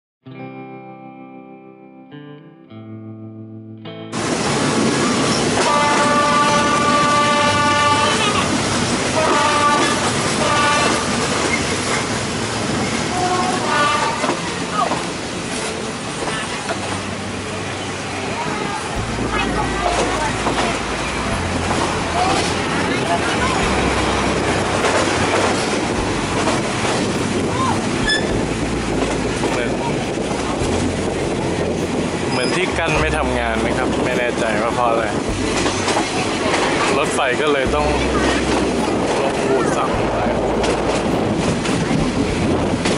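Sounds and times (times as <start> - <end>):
rushing air: 4.2 - 42.9
train running noise: 4.2 - 42.9
locomotive horn blast: 5.2 - 11.5, 13.0 - 14.7.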